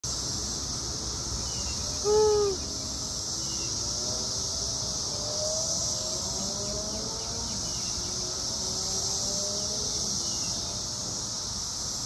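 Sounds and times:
cicada chorus droning: 0.1s - 12.0s
loud hoot-like call: 2.0s - 2.7s.

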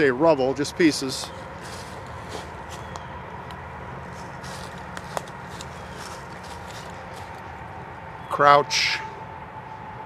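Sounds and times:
distant highway traffic: 0.0s - 10.0s
footsteps crunching dry leaves: 0.8s - 3.1s, 3.9s - 7.7s.

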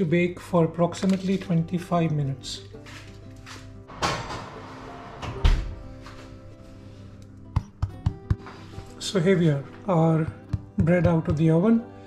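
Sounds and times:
soft background music: 0.0s - 12.0s
oven door thump: 3.9s - 5.8s.

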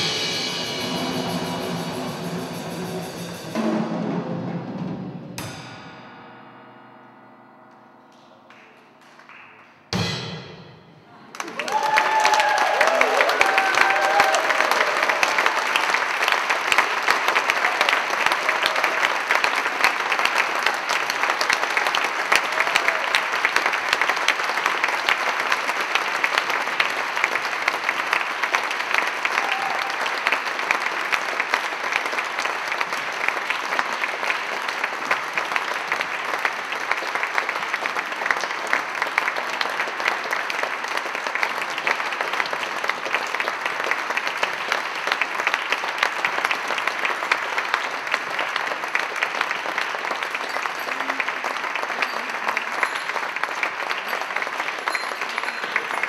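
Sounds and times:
audience applause: 11.1s - 56.0s.

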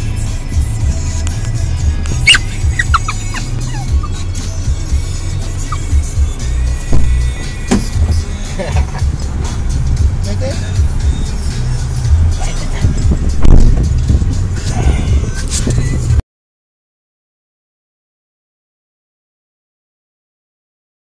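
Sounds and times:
car cabin rumble: 0.0s - 16.2s
short high squeaks: 2.1s - 4.3s.

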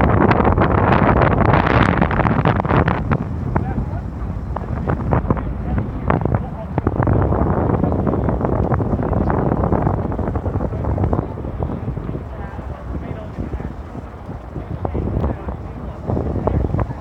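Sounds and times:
wind buffeting microphone: 0.0s - 17.0s
voices of passers-by: 2.8s - 17.0s.

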